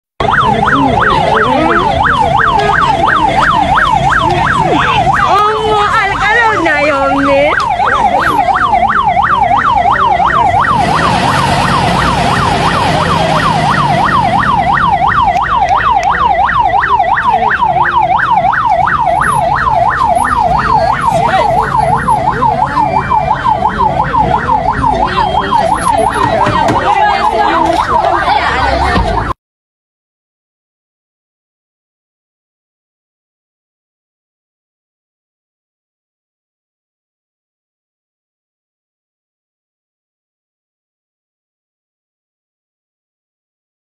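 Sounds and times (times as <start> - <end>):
siren yelping: 0.2 - 29.4
voices: 0.2 - 29.4.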